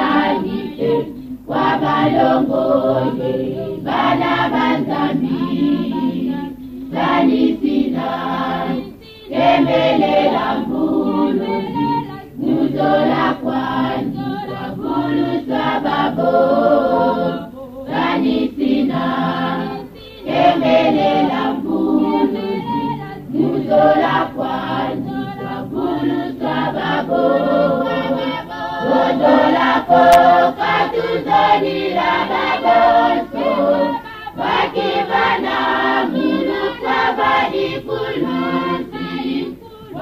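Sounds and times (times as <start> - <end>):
choir singing: 0.0 - 40.0.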